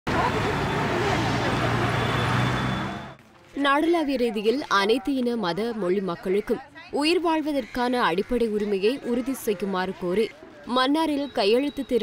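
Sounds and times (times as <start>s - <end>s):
road traffic: 0.0s - 5.6s.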